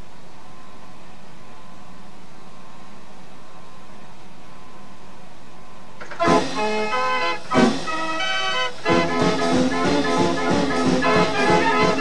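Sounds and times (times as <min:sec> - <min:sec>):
faint hum: 0:00.0 - 0:12.0
tape hiss: 0:00.0 - 0:12.0.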